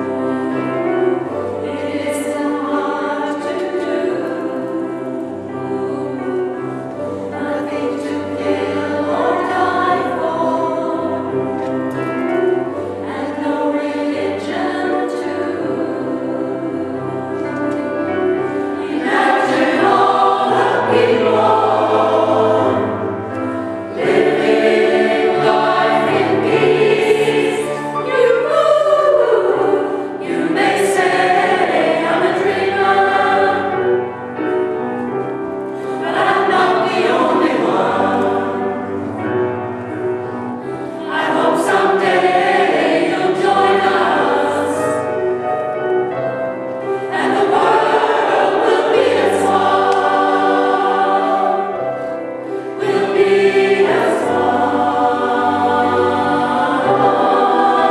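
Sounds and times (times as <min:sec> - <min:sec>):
mixed choir singing: 0:00.0 - 0:57.9.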